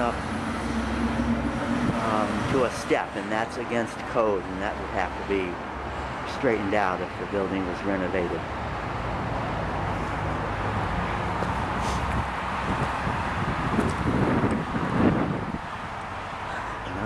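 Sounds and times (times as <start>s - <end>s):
road traffic: 0.0s - 17.0s
wind rumbling on microphone: 0.2s - 2.6s, 9.2s - 17.0s.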